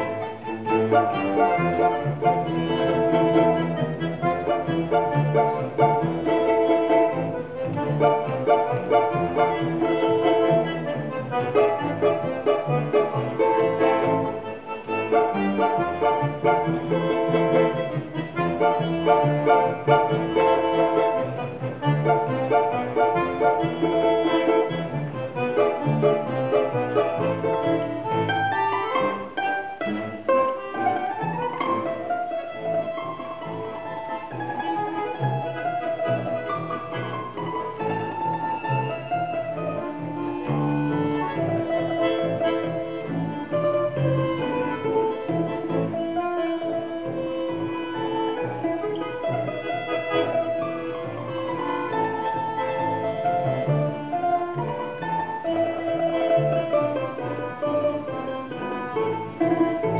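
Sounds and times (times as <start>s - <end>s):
button accordion chords: 0.0s - 59.9s
low balalaika bass notes: 0.0s - 59.9s
plucked string melody: 0.0s - 59.9s.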